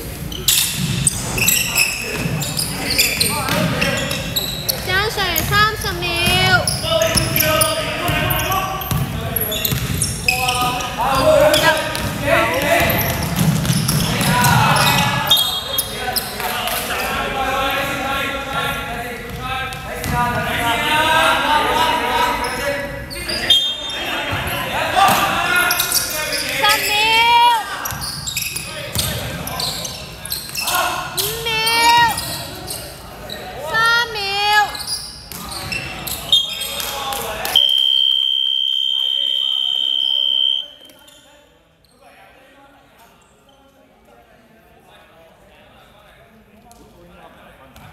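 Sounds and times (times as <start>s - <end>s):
players calling out: 0.4s - 16.3s, 23.2s - 40.8s
basketball bouncing: 5.3s - 7.4s, 8.1s - 10.1s, 11.8s - 14.6s.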